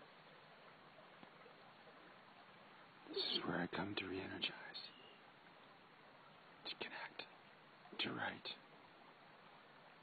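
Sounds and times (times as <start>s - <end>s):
low steady hiss: 0.0s - 10.0s
faint voice: 3.1s - 4.9s
person whispering: 3.1s - 5.0s, 6.6s - 7.3s, 8.0s - 8.6s.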